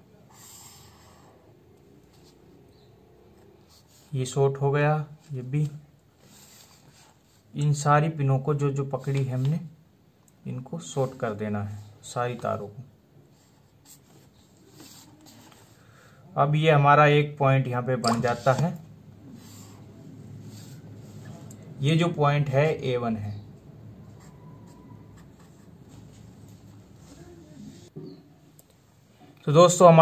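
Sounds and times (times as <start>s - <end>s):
marker scratching on paper: 18.1s - 18.7s, 24.0s - 27.9s.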